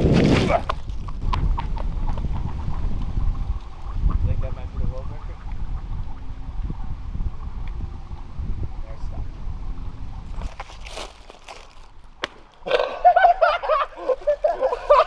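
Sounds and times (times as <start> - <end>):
wind on microphone: 0.0 - 12.2.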